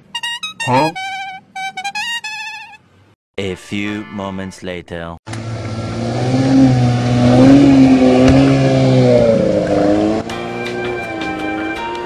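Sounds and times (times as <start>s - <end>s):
music: 3.4s - 4.6s, 10.2s - 12.0s
vehicle engine running: 5.3s - 11.5s.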